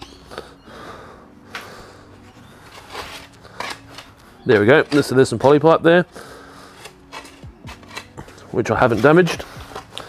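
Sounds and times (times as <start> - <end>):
spade scraping into rubbly soil: 2.4 - 5.6, 6.7 - 9.9.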